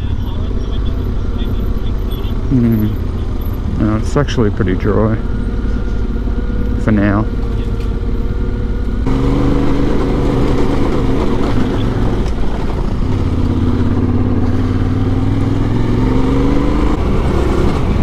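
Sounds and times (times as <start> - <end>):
motorcycle engine running: 0.0 - 18.0.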